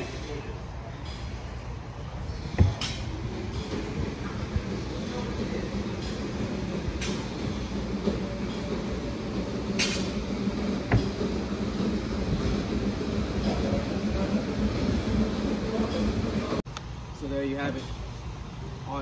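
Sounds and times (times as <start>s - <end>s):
low mechanical rumble: 0.0s - 17.3s.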